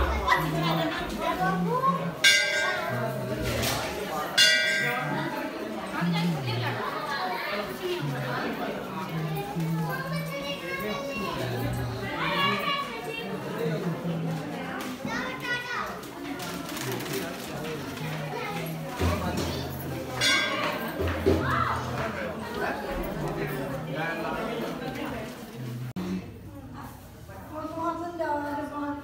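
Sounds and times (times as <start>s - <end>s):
children playing: 0.0s - 26.0s
chatter of voices: 0.0s - 29.0s
temple bell clanging: 2.2s - 5.7s, 20.0s - 21.2s.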